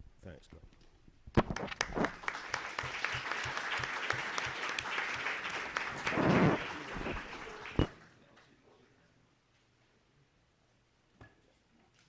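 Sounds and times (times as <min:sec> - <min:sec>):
audience applauding: 0:01.5 - 0:08.5.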